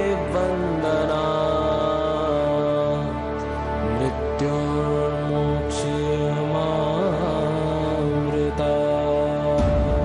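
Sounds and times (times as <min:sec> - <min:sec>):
mantra chanting: 0:00.0 - 0:10.0.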